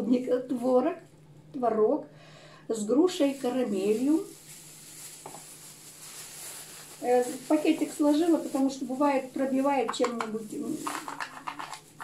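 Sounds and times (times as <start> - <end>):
plastic bag crinkling: 3.0 - 12.0.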